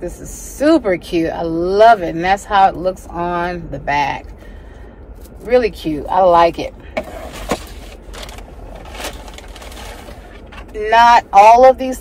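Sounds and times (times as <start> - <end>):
low hum in car cabin: 0.0 - 12.0.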